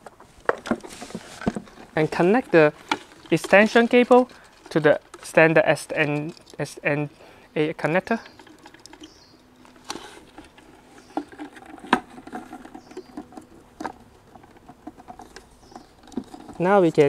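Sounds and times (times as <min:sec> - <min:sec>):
light scratching and rustling: 0:00.0 - 0:17.0.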